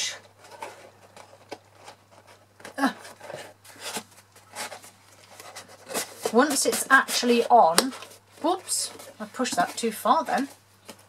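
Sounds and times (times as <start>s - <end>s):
cardstock rustling and scraping: 0.0s - 11.0s.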